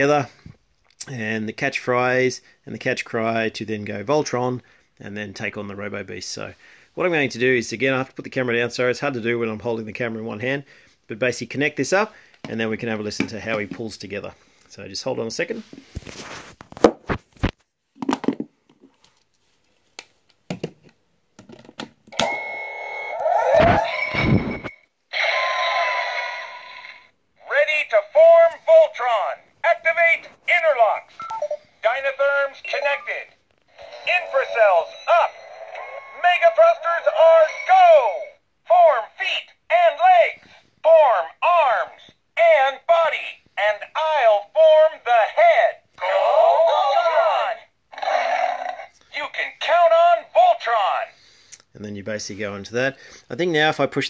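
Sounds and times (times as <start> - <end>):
voice from small toy speaker: 25.1 - 51.1.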